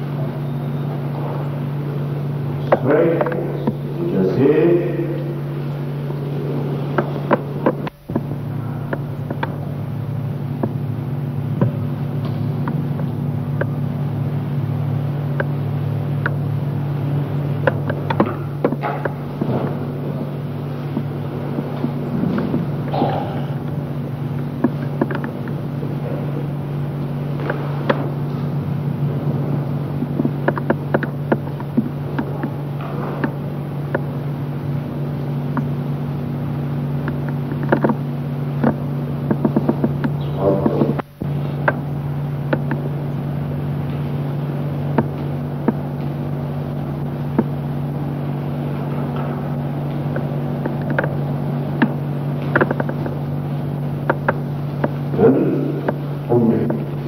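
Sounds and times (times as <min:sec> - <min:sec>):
film soundtrack hum: 0:00.0 - 0:57.0
clicks and pops: 0:06.9 - 0:09.7, 0:10.5 - 0:10.8, 0:17.3 - 0:28.5, 0:29.9 - 0:34.3, 0:36.6 - 0:43.2, 0:44.8 - 0:57.0.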